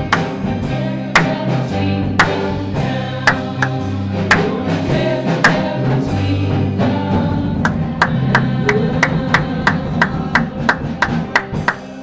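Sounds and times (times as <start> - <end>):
gospel praise band music: 0.0 - 12.0
sharp percussive hits: 1.2 - 1.5, 7.6 - 12.0.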